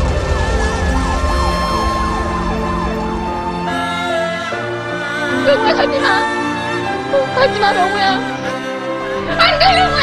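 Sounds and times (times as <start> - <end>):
emergency vehicle siren wailing: 0.0 - 6.4
background music: 0.0 - 10.0.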